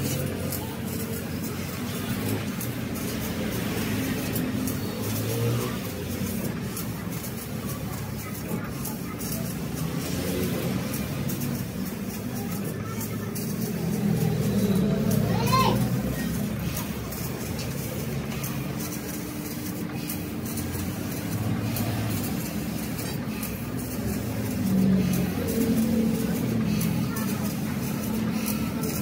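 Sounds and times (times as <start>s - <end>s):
indistinct voices: 0.0s - 29.0s.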